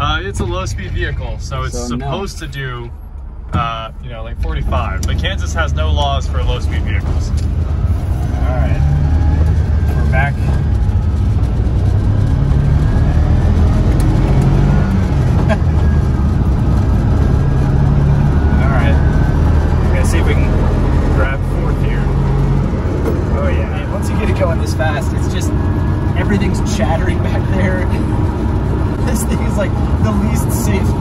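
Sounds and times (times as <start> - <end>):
road noise: 0.0 - 31.0.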